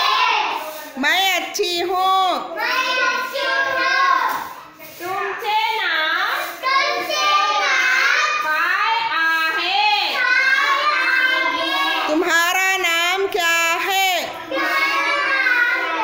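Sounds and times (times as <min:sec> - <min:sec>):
young children singing: 0:00.0 - 0:00.8, 0:02.5 - 0:04.8, 0:06.4 - 0:08.5, 0:10.1 - 0:12.3, 0:14.3 - 0:16.0.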